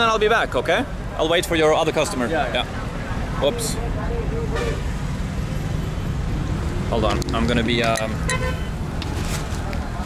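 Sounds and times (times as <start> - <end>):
busy street market background: 0.0 - 10.0.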